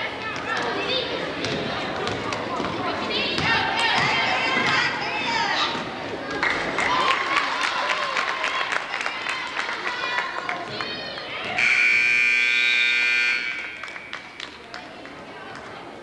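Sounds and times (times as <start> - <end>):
spectators' voices: 0.0 - 16.0
scoreboard horn blast: 11.6 - 14.1.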